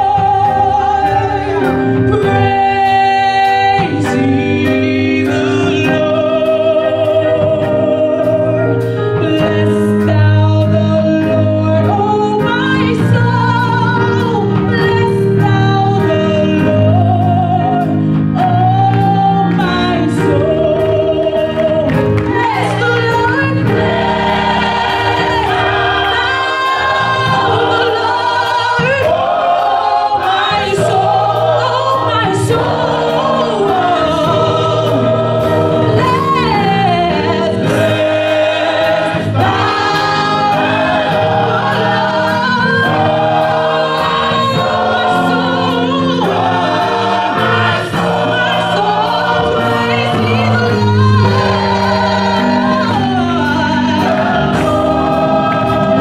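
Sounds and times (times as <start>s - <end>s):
gospel choir singing: 0.0s - 56.0s
instrumental accompaniment: 0.0s - 56.0s
woman singing lead: 0.0s - 56.0s.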